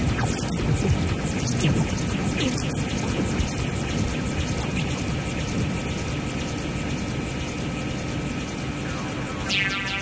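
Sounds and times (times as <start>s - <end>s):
ambient electronic synth music: 0.0s - 10.0s.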